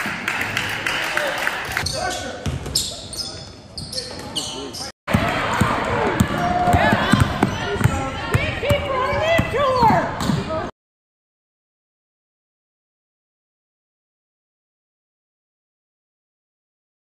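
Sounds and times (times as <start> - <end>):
voices of players and crowd: 0.5 - 10.7
sneakers squeaking: 1.8 - 4.9, 6.2 - 10.7.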